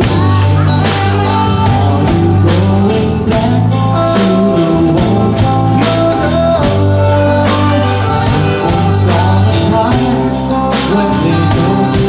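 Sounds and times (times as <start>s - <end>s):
saxophone line: 0.0s - 3.2s, 3.8s - 11.9s
bass: 0.0s - 12.0s
drum kit beat: 0.0s - 12.0s.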